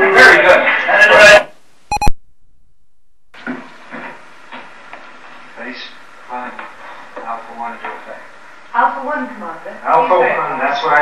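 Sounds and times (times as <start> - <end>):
tape hiss: 1.4 - 11.0
short electronic beep: 1.9 - 2.2.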